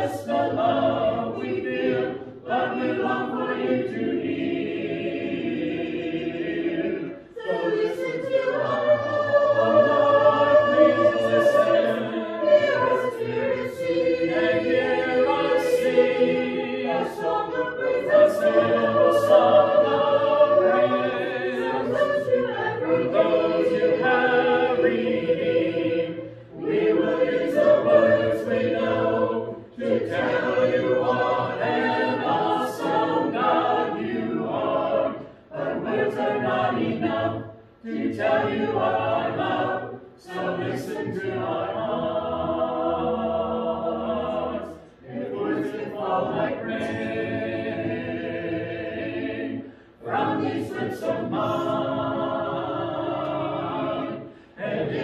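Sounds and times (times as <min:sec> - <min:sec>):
congregation singing a hymn: 0:00.0 - 0:55.0.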